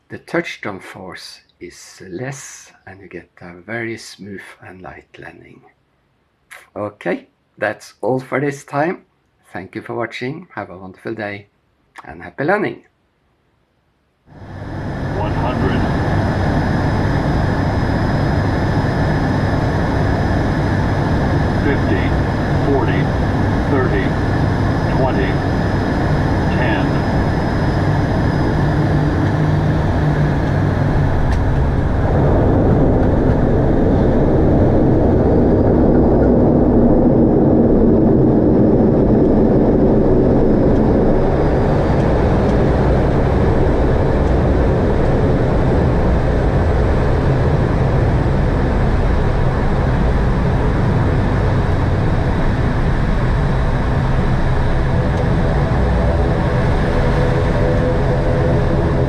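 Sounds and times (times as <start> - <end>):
aircraft engines rumbling: 14.3 - 59.0.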